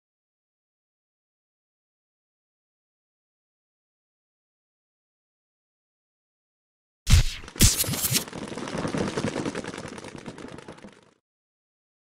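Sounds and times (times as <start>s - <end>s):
loud impact: 7.1s - 8.3s.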